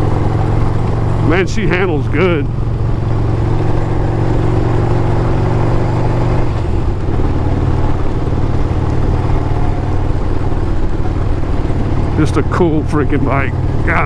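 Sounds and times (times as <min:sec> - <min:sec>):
motorcycle engine running: 0:00.0 - 0:14.0.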